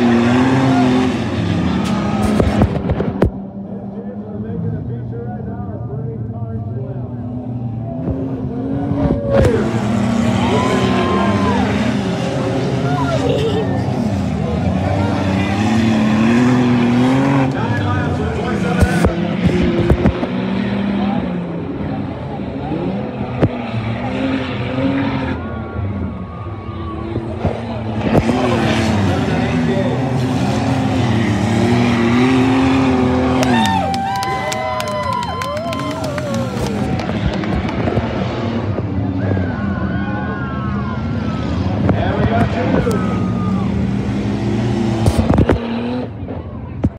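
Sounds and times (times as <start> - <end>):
crowd voices: 0.0 - 46.9
small race car engines revving: 0.0 - 46.9.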